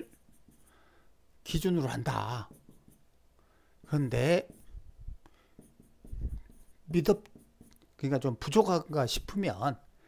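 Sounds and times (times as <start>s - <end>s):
pen scratching on tablet: 0.0s - 0.8s, 1.5s - 3.1s, 3.8s - 7.9s.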